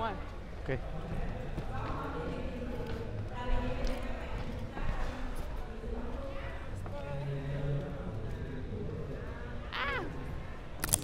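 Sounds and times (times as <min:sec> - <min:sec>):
low rumble of large hall: 0:00.0 - 0:11.0.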